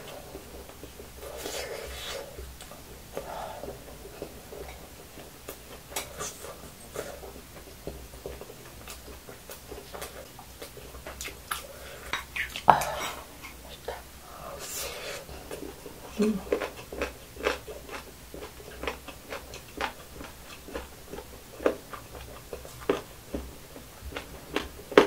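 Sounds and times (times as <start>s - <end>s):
chewing: 0.0s - 25.0s.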